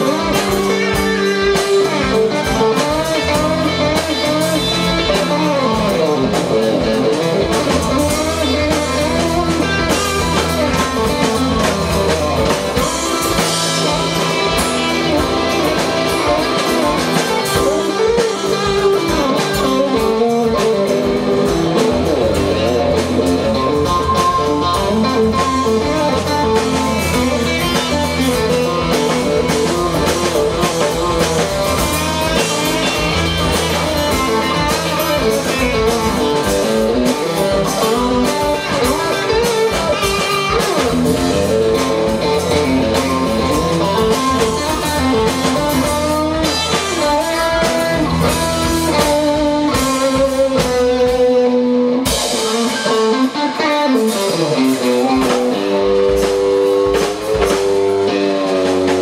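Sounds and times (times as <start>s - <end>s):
drum kit: 0.0s - 59.0s
electric guitar: 0.0s - 59.0s.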